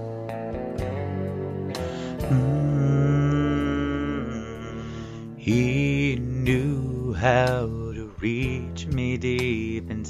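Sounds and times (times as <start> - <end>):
guitar accompaniment: 0.0 - 10.0
man singing country ballad: 2.2 - 10.0.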